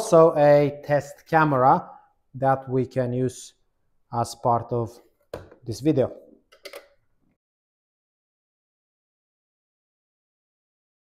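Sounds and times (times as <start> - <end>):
person speaking: 0.0 - 6.8.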